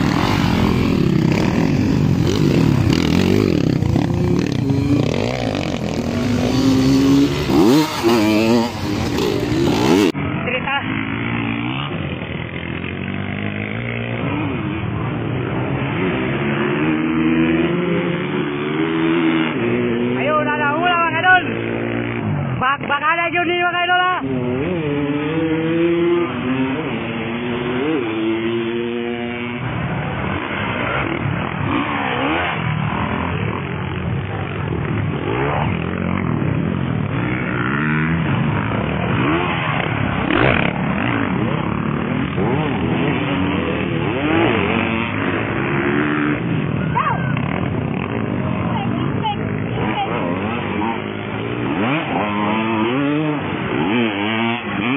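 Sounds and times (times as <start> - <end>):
dirt bike engines revving: 0.0 - 54.9.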